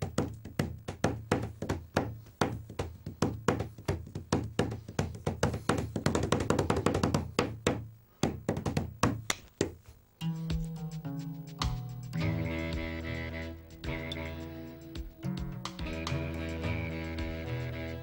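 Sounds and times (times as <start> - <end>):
hands drumming on a tabletop: 0.0 - 12.2.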